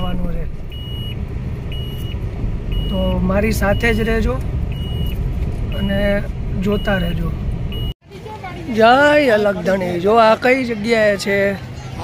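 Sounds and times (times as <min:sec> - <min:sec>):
car engine and tyres rumbling: 0:00.0 - 0:12.0
dashboard warning chime beeping: 0:00.7 - 0:08.0.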